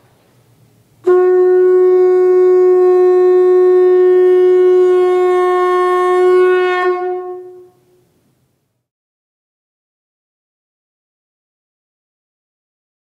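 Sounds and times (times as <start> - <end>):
conch shell blown: 1.0 - 8.2.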